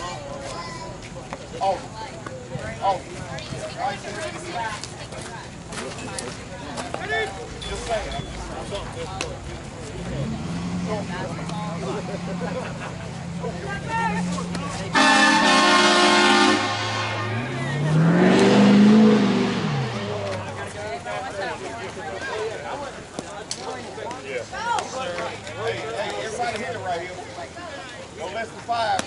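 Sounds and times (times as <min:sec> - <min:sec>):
people chattering: 0:00.0 - 0:29.0
vehicle engine revving: 0:08.3 - 0:21.0.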